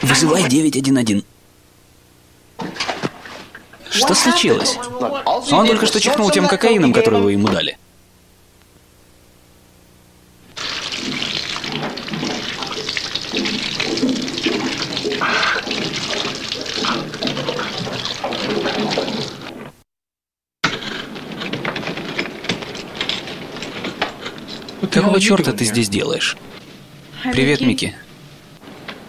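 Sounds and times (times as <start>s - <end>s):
running water rushing: 10.6s - 19.7s.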